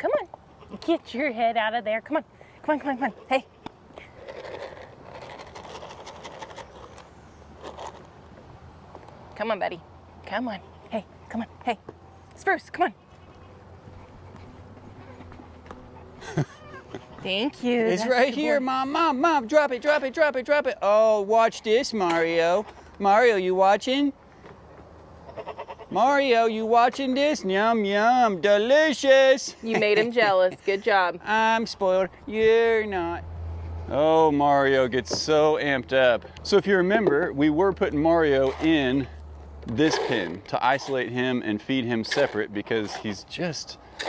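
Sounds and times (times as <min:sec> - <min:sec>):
goat crunching feed pellets: 0:04.0 - 0:08.2
goat rooting in feed pellets: 0:04.0 - 0:08.2, 0:38.1 - 0:44.0.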